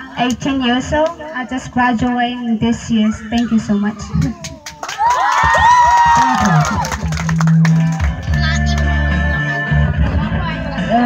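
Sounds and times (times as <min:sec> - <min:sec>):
clapping: 0:04.2 - 0:08.9
audience cheering and whooping: 0:04.6 - 0:07.3.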